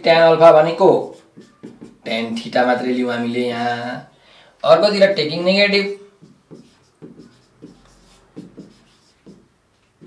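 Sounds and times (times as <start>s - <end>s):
marker pen writing on whiteboard: 0.1s - 2.8s, 4.8s - 10.0s.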